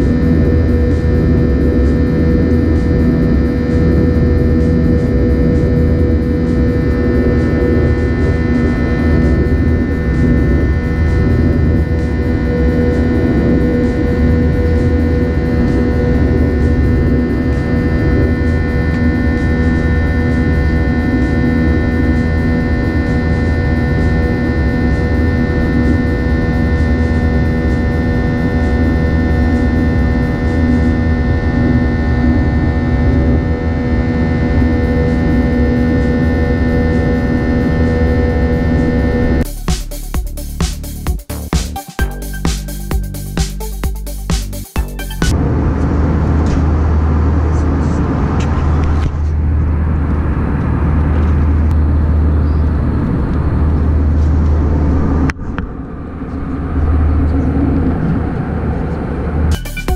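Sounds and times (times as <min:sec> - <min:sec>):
humming tones: 0:00.0 - 0:48.0, 0:49.3 - 0:59.9
jet engine cabin drone: 0:00.0 - 0:59.9.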